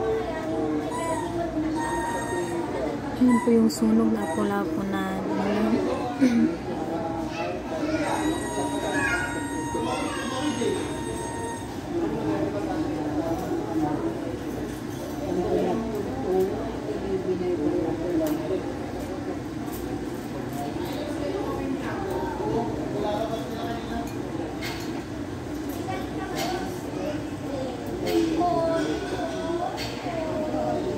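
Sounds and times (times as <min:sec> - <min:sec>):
indistinct chatter of voices: 0:00.0 - 0:30.9.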